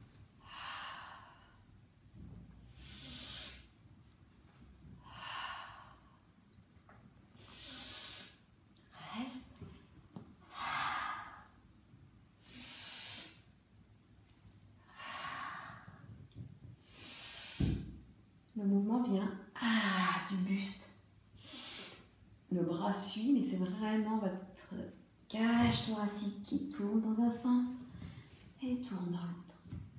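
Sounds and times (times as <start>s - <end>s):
woman breathing deeply: 0.4s - 3.8s, 5.0s - 6.4s, 7.3s - 9.2s, 10.4s - 11.7s, 12.4s - 13.6s, 14.8s - 18.1s, 21.4s - 22.2s.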